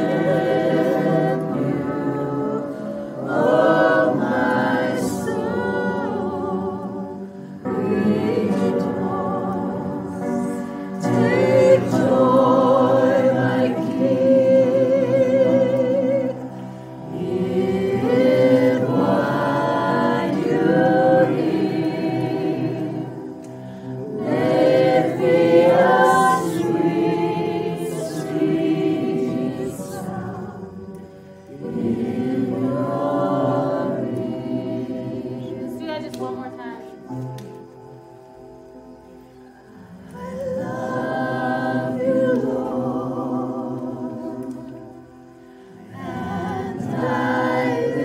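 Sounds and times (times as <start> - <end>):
women singing a worship song: 0.0 - 37.7, 39.3 - 48.0.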